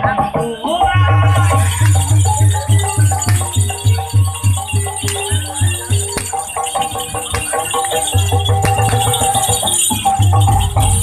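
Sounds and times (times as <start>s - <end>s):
gamelan music: 0.0s - 11.0s
pulsing low beat: 1.0s - 9.4s.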